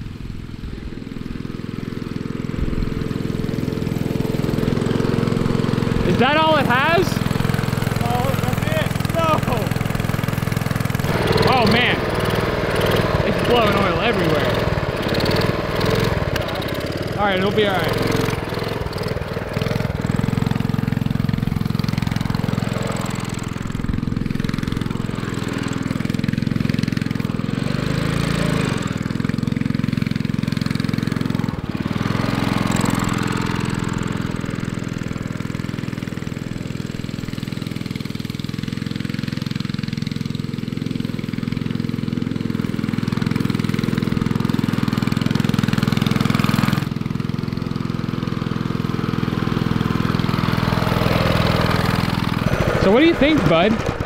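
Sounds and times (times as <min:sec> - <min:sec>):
mini bike engine running: 0:00.0 - 0:54.0.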